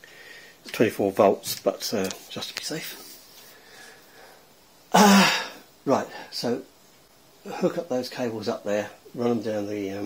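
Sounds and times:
man coughing: 4.9s - 5.6s.

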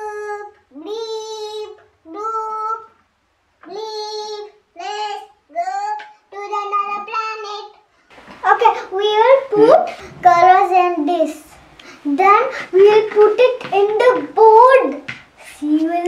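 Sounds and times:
young girl singing: 0.0s - 3.0s, 3.6s - 16.0s.

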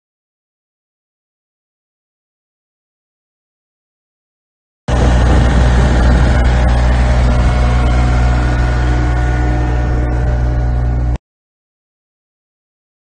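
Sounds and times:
mower diesel engine running: 4.9s - 11.2s.

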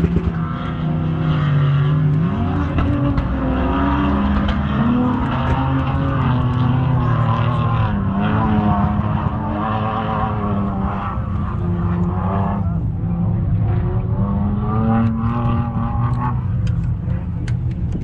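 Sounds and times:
off-road vehicle engine revving: 0.0s - 18.0s.

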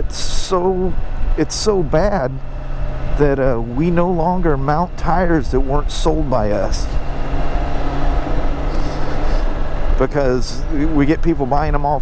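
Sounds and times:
motorcycle engine cruising: 0.0s - 12.0s
wind and road noise: 0.0s - 12.0s.

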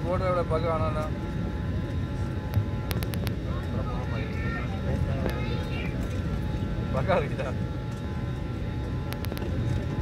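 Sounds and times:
airliner cabin rumble: 0.0s - 10.0s
sharp clicks: 2.5s - 3.3s.

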